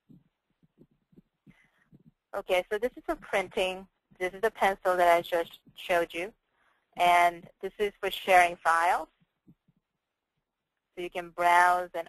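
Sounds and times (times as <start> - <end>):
soft low thumps: 0.0 - 6.1
person speaking: 2.0 - 6.3, 7.0 - 9.1.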